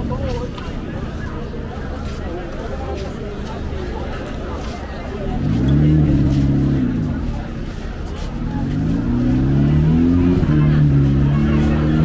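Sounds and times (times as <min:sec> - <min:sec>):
crowd chatter: 0:00.0 - 0:12.0
vehicle engine revving: 0:04.5 - 0:12.0.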